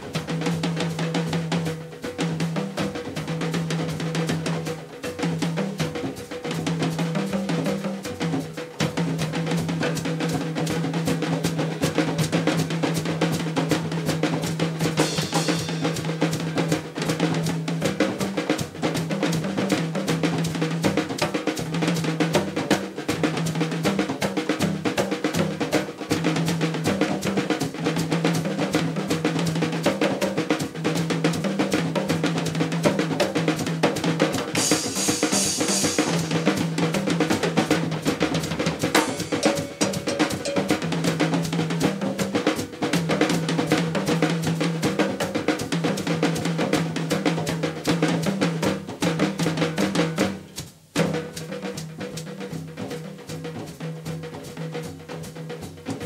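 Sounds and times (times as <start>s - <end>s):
repeating low drum figure: 0.0s - 29.8s, 30.8s - 53.2s
fast drum strokes: 0.0s - 56.0s.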